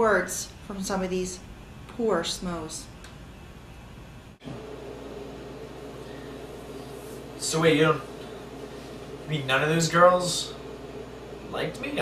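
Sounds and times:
room tone hiss and hum: 0.0 - 12.0.

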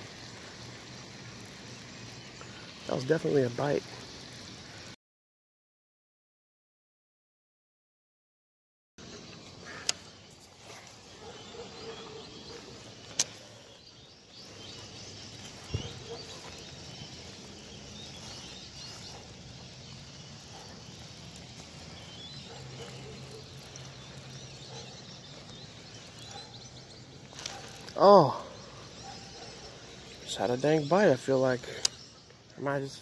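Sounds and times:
small birds chirping: 0.0 - 5.0, 9.0 - 33.0
sharp clicks: 13.1 - 13.4, 31.8 - 32.0.

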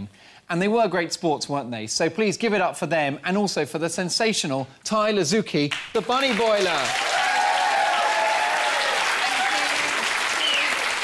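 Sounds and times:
audience applauding: 5.7 - 11.0.

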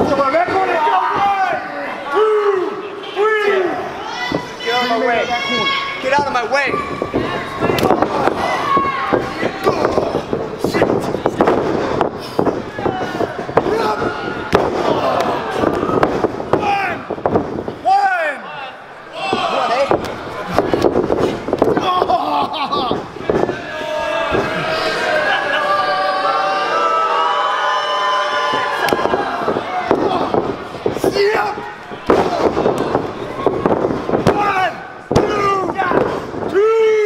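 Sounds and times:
crowd shouting and cheering: 0.0 - 37.0.

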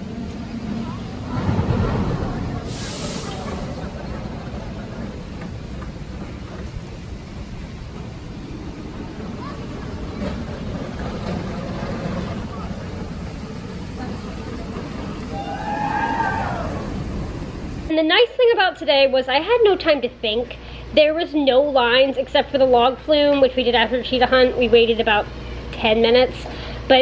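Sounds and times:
indistinct crowd voices: 0.0 - 17.9
low rumble: 0.0 - 17.9.

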